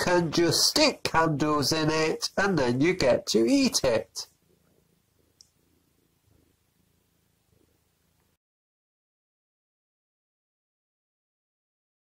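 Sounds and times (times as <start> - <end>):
cat purring: 4.4 - 8.4.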